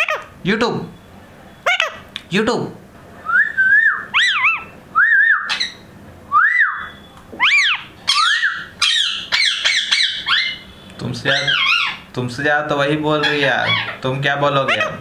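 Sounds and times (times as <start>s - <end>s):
parakeet whistling: 3.2s - 15.0s.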